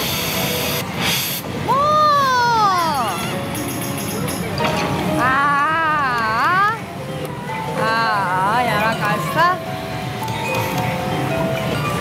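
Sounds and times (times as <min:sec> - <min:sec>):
slot machine music: 0:07.8 - 0:12.0.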